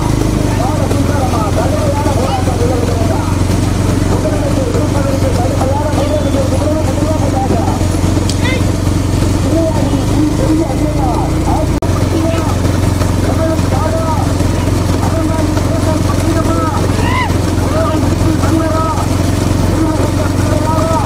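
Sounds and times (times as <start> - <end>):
motorcycle engines running: 0.0 - 21.0
voices shouting and calling: 0.0 - 21.0.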